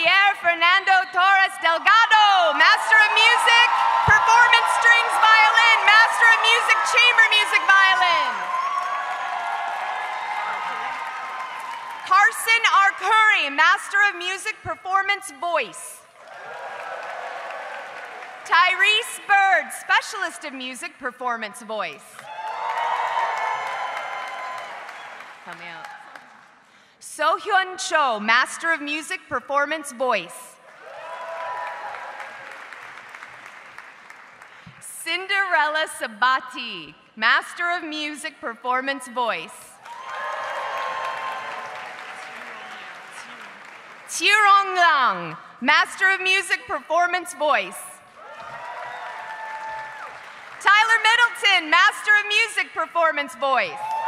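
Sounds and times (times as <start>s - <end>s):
audience cheering: 2.2s - 12.7s, 16.2s - 18.9s, 22.2s - 26.3s, 30.8s - 33.2s, 39.8s - 44.0s, 48.2s - 50.6s, 53.7s - 54.0s
audience applauding: 2.4s - 12.1s, 16.2s - 18.6s, 22.2s - 26.5s, 30.7s - 34.6s, 39.8s - 44.1s, 48.2s - 51.4s.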